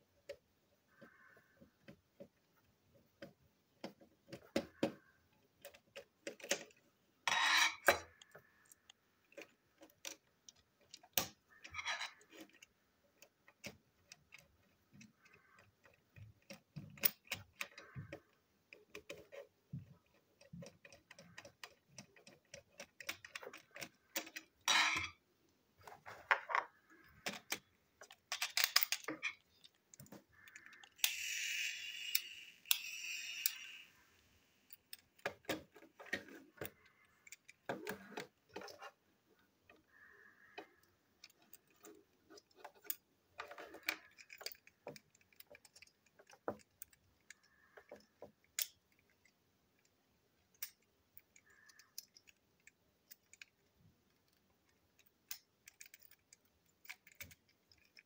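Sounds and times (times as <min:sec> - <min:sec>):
plastic clicks: 0:00.2 - 0:25.2, 0:25.8 - 0:58.0
plastic toy parts scraping: 0:03.8 - 0:25.2, 0:25.8 - 0:39.1, 0:39.7 - 0:49.9.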